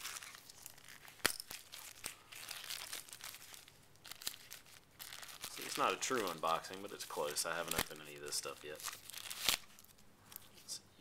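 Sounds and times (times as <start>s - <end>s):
plastic packaging crinkling: 0.0s - 10.5s.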